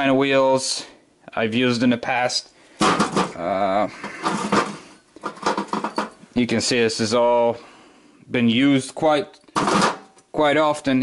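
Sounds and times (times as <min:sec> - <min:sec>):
metal tools clinking: 0:04.2 - 0:06.2.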